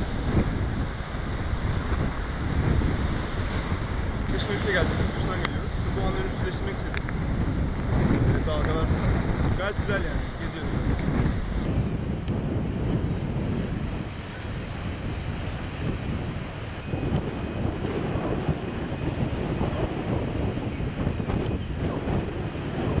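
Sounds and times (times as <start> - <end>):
gusty wind buffeting microphone: 0.0 - 23.0
storm waves breaking on shore: 0.0 - 23.0.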